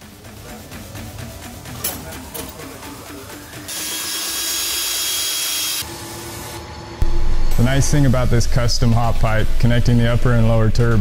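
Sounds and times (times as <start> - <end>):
background music with beat: 0.0 - 3.8
power tool running: 3.7 - 7.6.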